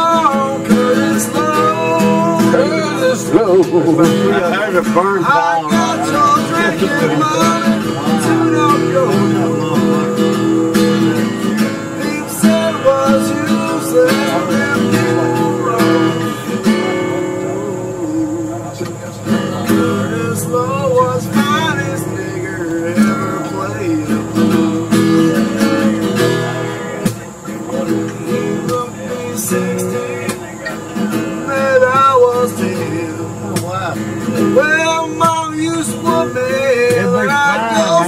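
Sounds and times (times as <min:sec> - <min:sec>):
acoustic guitar blues strumming: 0:00.0 - 0:38.0.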